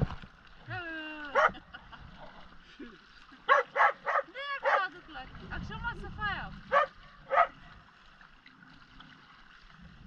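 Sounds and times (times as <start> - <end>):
dog yelping: 6.7 - 7.5.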